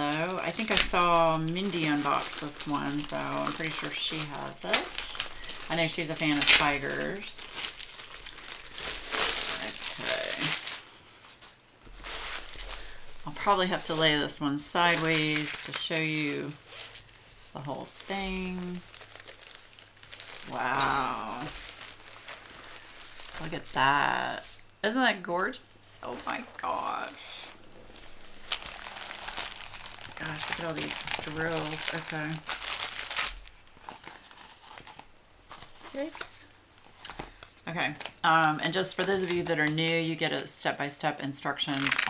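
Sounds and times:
plastic sleeve crinkling: 0.0 - 40.2, 41.5 - 42.0.

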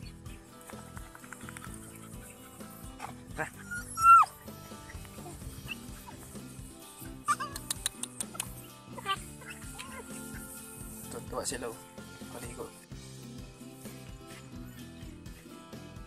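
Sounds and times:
background music with steady tones: 0.0 - 16.0
dog whining: 1.2 - 10.7.

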